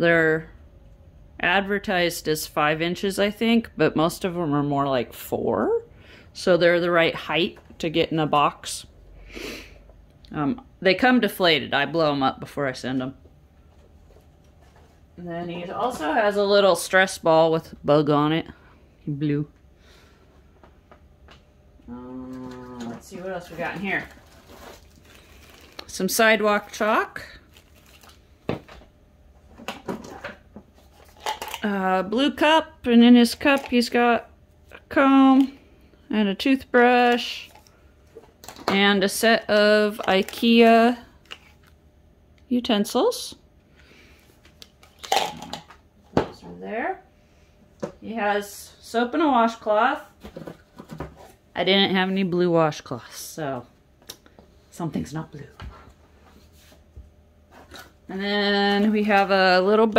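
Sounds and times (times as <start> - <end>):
objects rubbing and rustling: 13.6 - 16.2, 22.1 - 31.8, 37.0 - 41.8, 50.0 - 51.6, 55.4 - 59.6
utensils clattering into plastic cup: 31.0 - 31.7.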